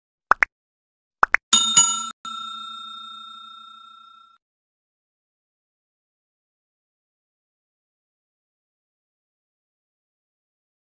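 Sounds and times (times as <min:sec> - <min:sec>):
bell-like ding: 0:01.5 - 0:04.4
short bright chime: 0:01.6 - 0:04.3.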